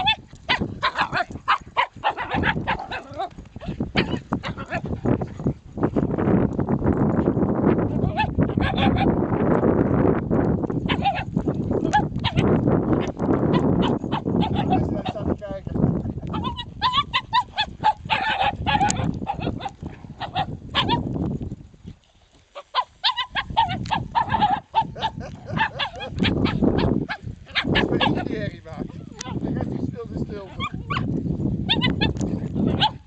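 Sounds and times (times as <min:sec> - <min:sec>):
dogs barking in quick yaps: 0:00.0 - 0:04.8, 0:16.3 - 0:21.1, 0:22.6 - 0:28.2, 0:31.7 - 0:33.0
wind rumble on microphone: 0:00.0 - 0:33.0.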